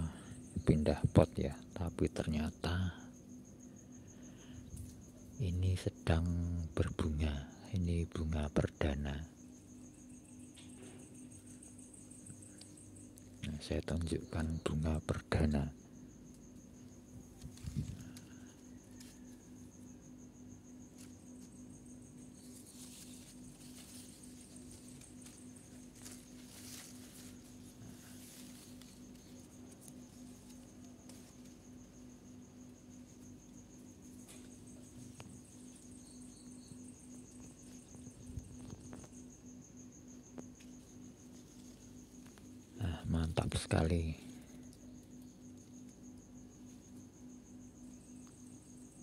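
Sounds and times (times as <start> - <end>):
crickets trilling: 0.0 - 49.0
low steady hum: 0.0 - 49.0
faint rustles: 16.3 - 19.9, 20.8 - 39.4.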